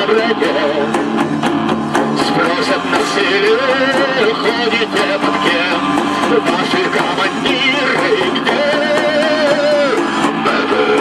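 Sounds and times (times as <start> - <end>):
accordion melody: 0.0 - 11.0
electric guitar: 0.0 - 11.0
hand drums: 0.0 - 11.0.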